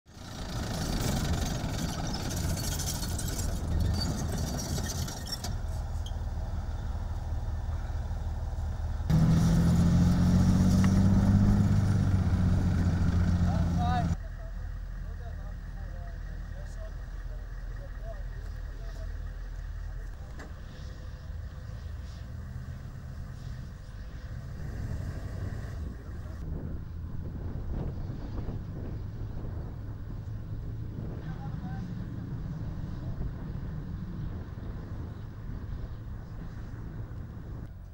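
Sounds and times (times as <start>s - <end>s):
distant engine rumble: 0.1s - 37.9s
steady engine hum: 0.1s - 37.9s
tracked vehicle engine and tracks: 0.1s - 37.9s.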